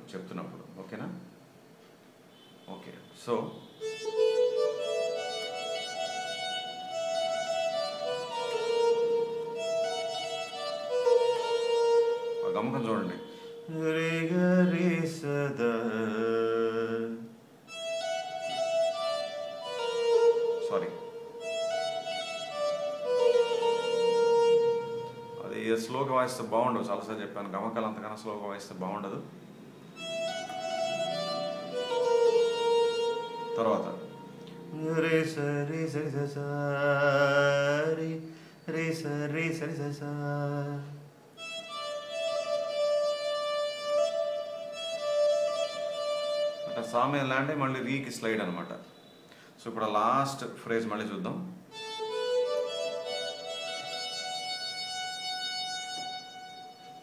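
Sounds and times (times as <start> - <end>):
synthesizer melody of held notes: 3.8 - 14.8, 17.7 - 26.1, 30.0 - 35.6, 41.4 - 47.6, 51.7 - 57.0.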